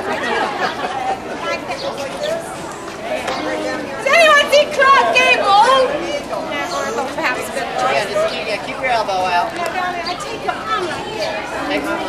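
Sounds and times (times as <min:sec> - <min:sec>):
background chatter: 0:00.0 - 0:12.0
people talking: 0:00.0 - 0:12.0.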